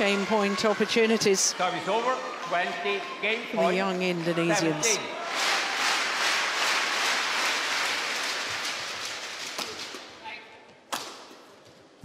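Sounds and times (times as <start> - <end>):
arena crowd applause: 0.0 - 9.6.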